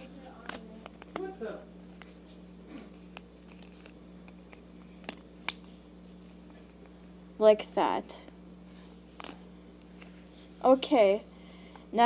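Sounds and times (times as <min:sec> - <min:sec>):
faint hum: 0:00.0 - 0:12.0.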